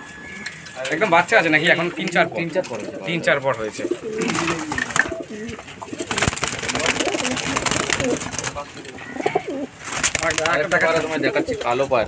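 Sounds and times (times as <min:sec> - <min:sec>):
birds scuffling in cages: 0:00.0 - 0:12.0
pigeons cooing: 0:00.0 - 0:12.0.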